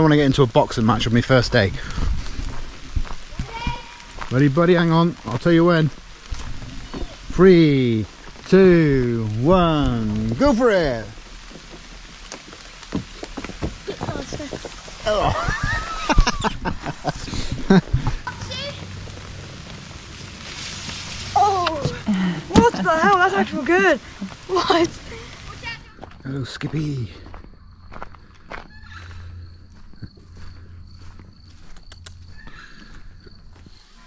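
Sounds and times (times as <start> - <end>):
light rain hissing: 0.0 - 27.4
footsteps on leafy dirt path: 0.0 - 34.0
child calling: 3.3 - 4.2, 18.2 - 18.9.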